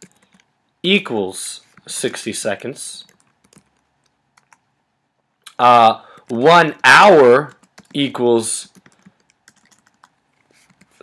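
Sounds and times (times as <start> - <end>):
computer keyboard keystrokes: 0.0 - 0.5, 3.0 - 4.6, 7.5 - 8.0, 8.7 - 11.0.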